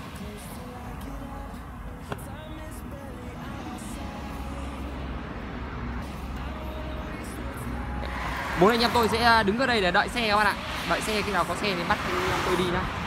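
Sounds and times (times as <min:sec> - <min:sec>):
passing vehicles rumble: 0:00.0 - 0:13.0.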